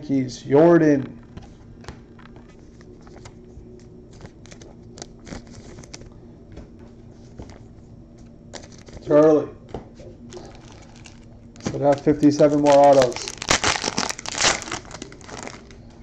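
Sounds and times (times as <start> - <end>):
low steady hum: 0.0 - 16.0
cards and foil wrappers crinkling: 4.1 - 6.1, 8.5 - 9.2, 10.3 - 16.0.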